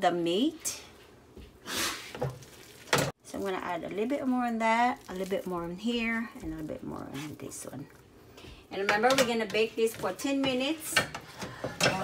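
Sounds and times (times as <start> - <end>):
hands squishing mashed potato: 4.5 - 7.8.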